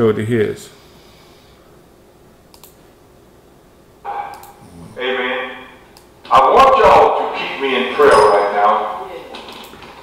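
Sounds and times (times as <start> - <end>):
man preaching through speakers: 4.1 - 5.7, 6.3 - 9.0.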